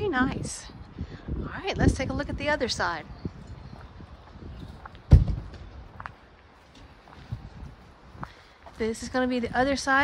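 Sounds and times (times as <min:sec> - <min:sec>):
faint footsteps: 0:01.7 - 0:10.0.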